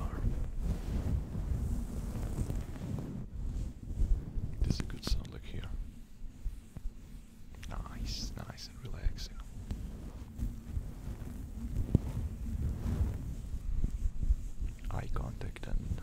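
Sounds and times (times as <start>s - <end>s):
hissy whispered mouth sounds: 0.0s - 0.8s, 4.5s - 12.6s, 13.3s - 16.0s
fabric rubbing on microphone: 0.0s - 16.0s.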